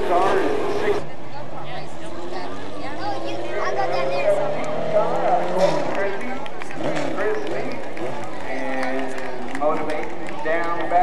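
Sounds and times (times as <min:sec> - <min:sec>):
people talking: 0:00.0 - 0:11.0
race car engine accelerating: 0:01.8 - 0:10.4.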